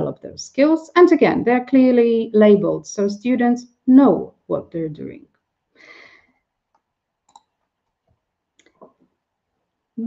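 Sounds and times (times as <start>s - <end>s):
short breath: 5.8s - 6.4s.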